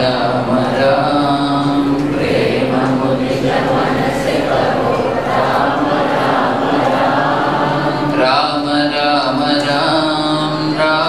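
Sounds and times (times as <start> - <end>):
group devotional chanting: 0.0 - 11.0.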